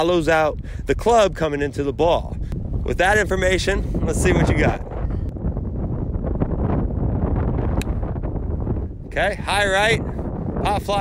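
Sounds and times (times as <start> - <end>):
wind buffeting microphone: 0.0 - 11.0
golf club striking ball: 7.7 - 8.1.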